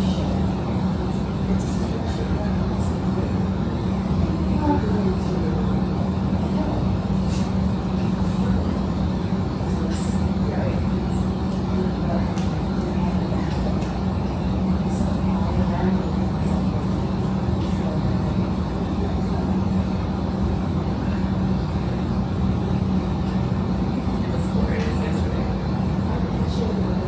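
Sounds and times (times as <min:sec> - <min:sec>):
room hum: 0:00.0 - 0:27.0.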